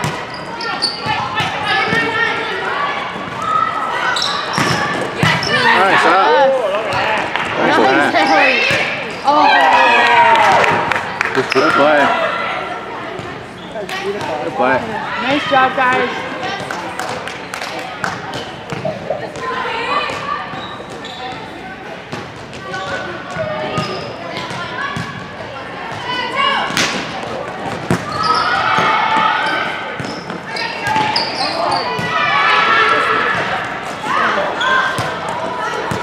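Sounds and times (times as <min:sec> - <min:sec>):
girls calling out and chattering: 0:00.0 - 0:10.6, 0:11.9 - 0:16.9, 0:18.0 - 0:26.8
volleyballs smacked and bouncing: 0:26.7 - 0:28.1.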